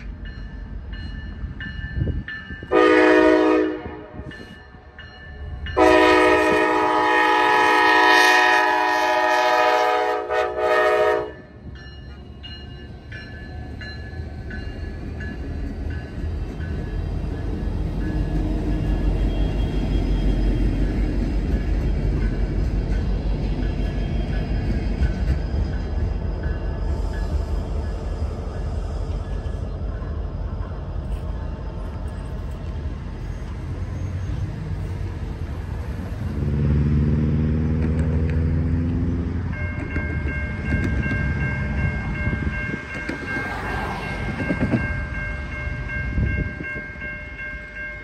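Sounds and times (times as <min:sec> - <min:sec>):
freight train rumbling: 0:00.0 - 0:48.0
diesel engine hum: 0:34.0 - 0:39.6.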